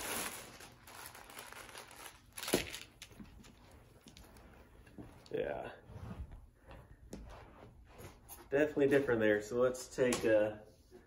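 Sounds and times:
plastic bag crinkling: 0.0s - 3.2s.

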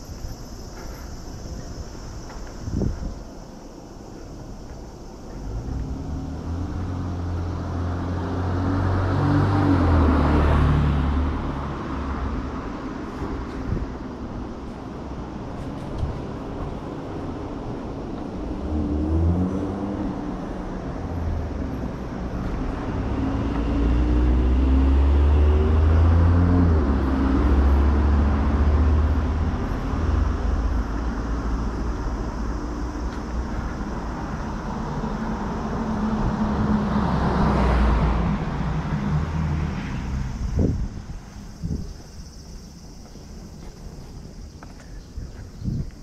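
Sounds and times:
vehicle engine accelerating past: 5.4s - 12.6s, 18.4s - 41.1s.

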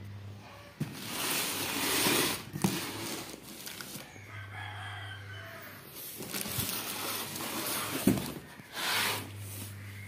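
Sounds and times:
rooster crowing: 4.0s - 6.0s
cardboard being handled: 6.0s - 9.7s.

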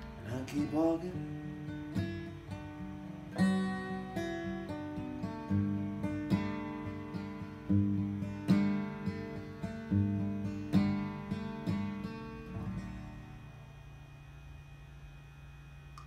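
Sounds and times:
acoustic guitar chords: 0.0s - 16.0s
faint low hum: 0.0s - 16.0s.

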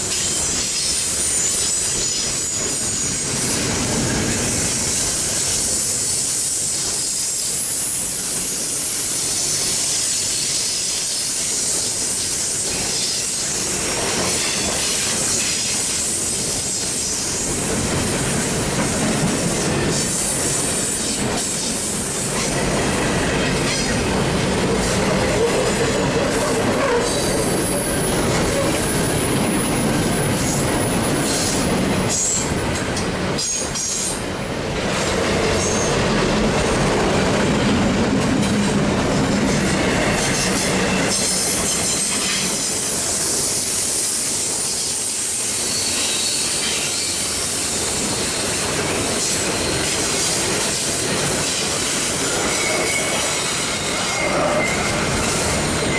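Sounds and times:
train wheels rumbling on rail: 0.0s - 55.9s
high-pitched wheel squeal: 45.6s - 47.2s, 52.2s - 55.9s.

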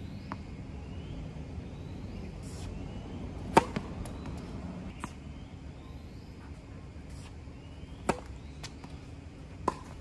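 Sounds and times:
outdoor background noise: 0.0s - 10.0s
tennis ball bouncing on court: 3.4s - 5.2s, 7.9s - 10.0s
tennis racket striking ball: 3.5s - 4.2s.

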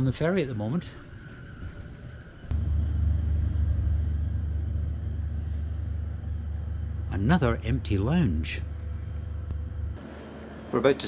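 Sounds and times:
ship engines rumbling: 0.0s - 11.0s.

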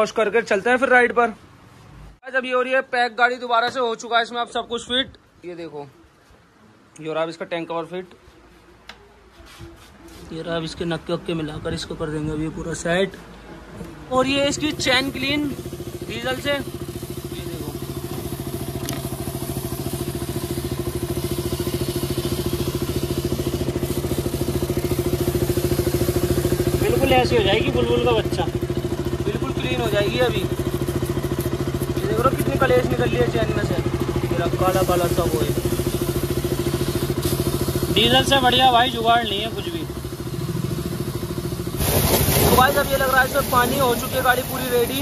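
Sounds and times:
motorcycle engine running: 14.1s - 45.0s
pressure washer spraying water: 14.4s - 45.0s.

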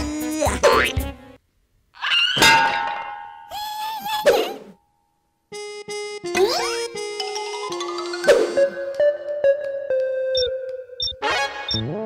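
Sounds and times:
comic background music: 5.6s - 12.0s.

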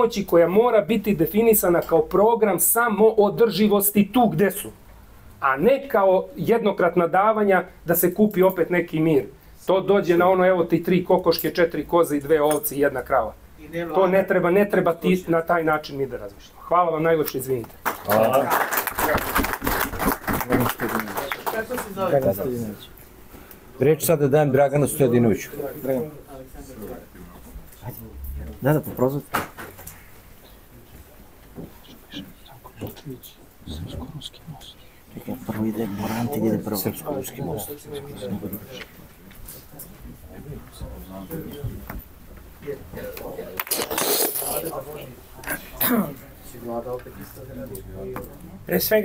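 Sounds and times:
man talking quietly: 31.8s - 38.9s.

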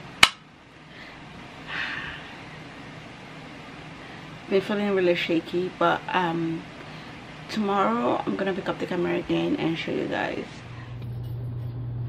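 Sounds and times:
faint room hum: 0.0s - 12.0s
sharp click: 0.2s - 0.4s.

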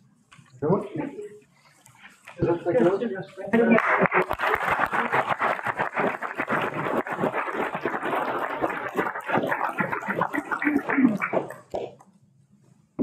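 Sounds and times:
people applauding: 3.6s - 11.9s.

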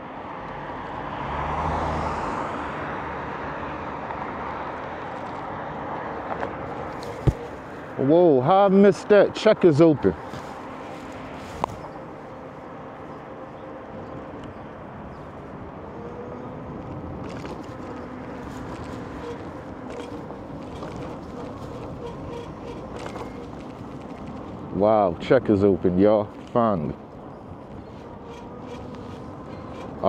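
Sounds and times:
road and traffic noise: 0.0s - 30.0s.

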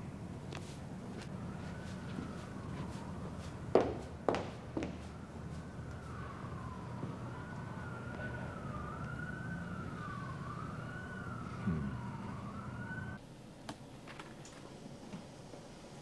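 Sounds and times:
low traffic rumble: 0.0s - 13.2s
emergency vehicle siren wailing: 1.2s - 13.2s.

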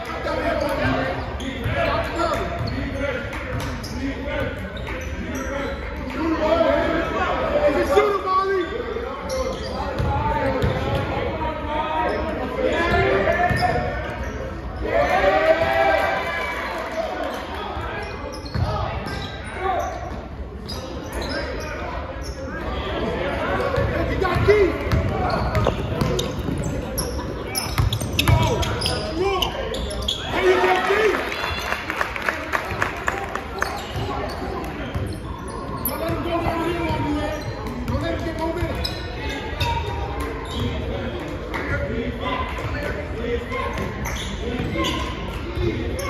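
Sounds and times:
basketball bouncing on court: 10.0s - 11.1s, 23.7s - 26.8s, 27.6s - 29.0s.

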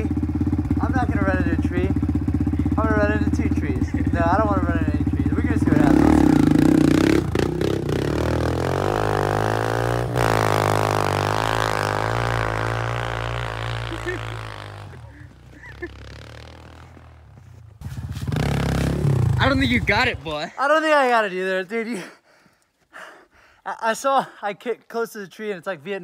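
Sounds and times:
pit bike engine revving: 0.0s - 20.5s.

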